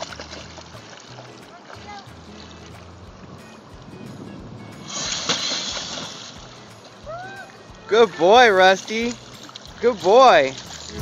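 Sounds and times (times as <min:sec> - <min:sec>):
background music: 0:00.0 - 0:11.0
water churning: 0:00.0 - 0:11.0.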